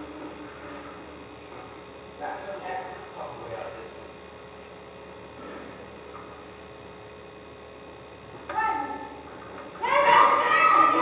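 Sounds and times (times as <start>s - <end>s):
electrical hum: 0.0s - 11.0s
loud speech: 9.8s - 11.0s.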